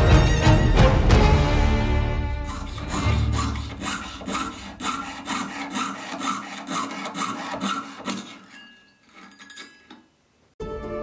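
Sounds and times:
saw blade rasping through metal: 0:02.3 - 0:09.9.

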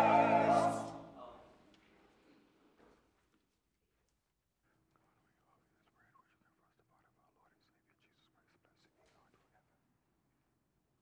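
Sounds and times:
faint whispered speech: 0:04.6 - 0:09.9.

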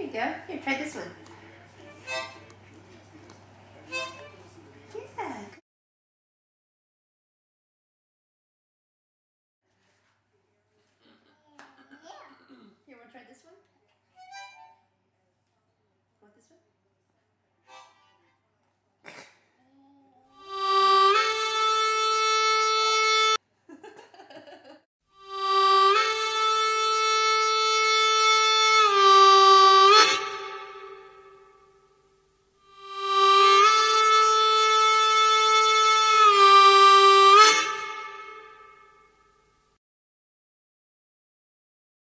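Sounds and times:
harmonica chords: 0:01.7 - 0:02.8, 0:03.8 - 0:04.6, 0:14.2 - 0:14.8, 0:17.7 - 0:18.2, 0:20.3 - 0:23.4, 0:25.1 - 0:31.8, 0:32.6 - 0:39.2.

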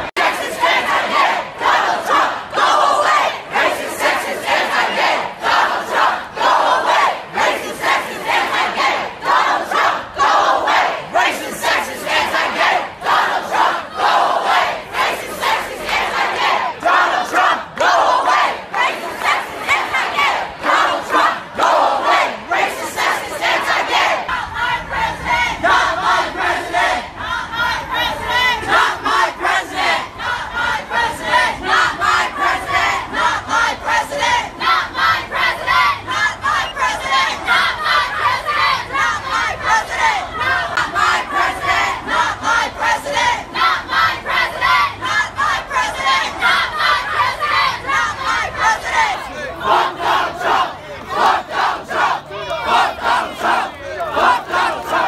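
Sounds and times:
crowd chanting and shouting: 0:00.0 - 0:55.0.

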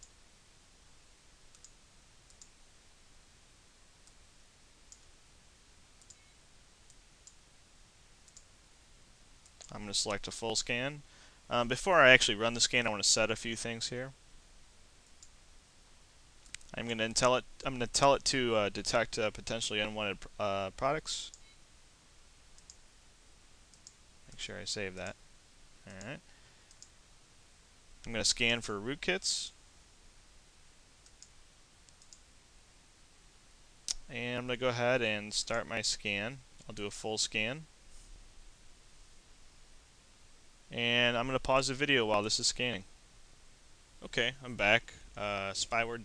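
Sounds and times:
background hiss: 0:00.0 - 0:46.0
computer mouse clicks: 0:01.5 - 0:02.5, 0:06.0 - 0:06.3, 0:08.2 - 0:08.5, 0:16.4 - 0:16.7, 0:22.6 - 0:22.8, 0:23.7 - 0:24.0, 0:26.7 - 0:26.9, 0:31.0 - 0:32.2.

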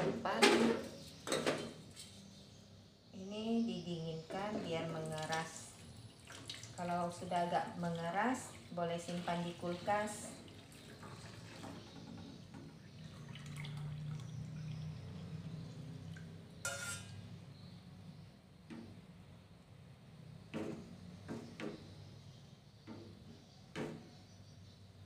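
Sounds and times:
liquid trickling and dripping: 0:05.0 - 0:11.8, 0:12.8 - 0:16.4
spoon tapping a metal pan: 0:16.6 - 0:17.1
spoon scraping a pan: 0:16.6 - 0:17.3.

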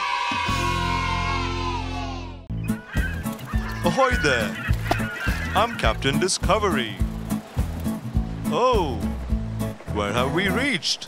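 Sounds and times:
cartoon soundtrack music: 0:00.1 - 0:07.3, 0:07.9 - 0:11.0
falling bird-like calls: 0:02.5 - 0:06.2.

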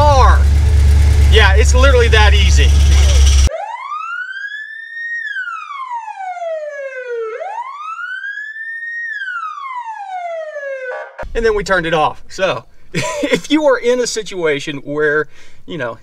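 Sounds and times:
car engine running: 0:00.0 - 0:03.5
siren wail: 0:01.5 - 0:11.2.

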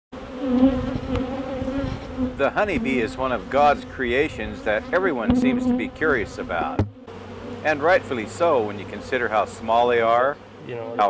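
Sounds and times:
honey bees buzzing: 0:00.2 - 0:11.0.

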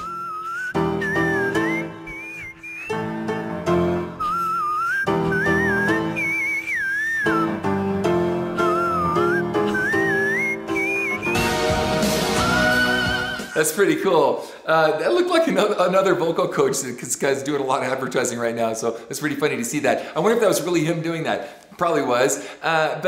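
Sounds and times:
piano chords: 0:00.0 - 0:13.6.

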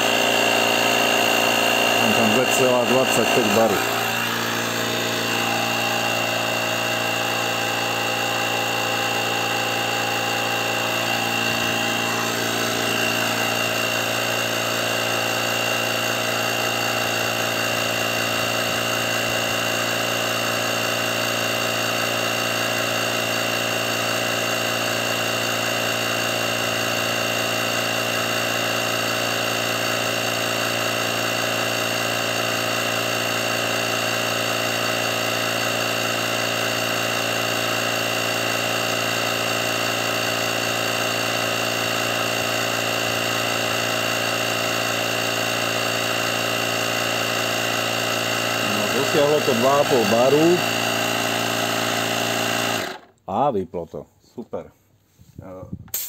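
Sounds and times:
air compressor motor whining: 0:00.0 - 0:53.5, 0:55.8 - 0:56.0.

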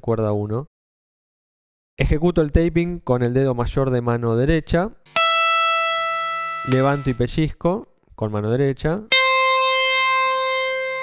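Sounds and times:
sustained electric guitar note: 0:05.1 - 0:07.3, 0:09.1 - 0:11.0.

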